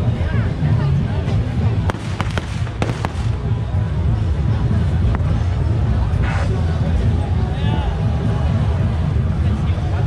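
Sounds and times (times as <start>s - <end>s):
dense background din: 0.0s - 10.0s
firecrackers banging: 1.8s - 3.7s.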